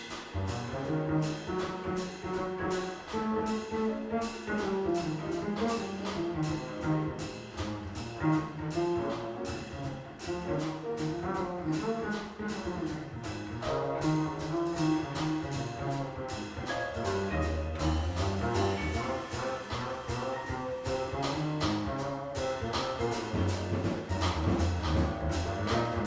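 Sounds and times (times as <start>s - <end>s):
drums with cymbal strokes: 0.0s - 26.0s
piano: 0.0s - 26.0s
walking upright bass: 0.0s - 26.0s
brass horn melody: 13.6s - 26.0s.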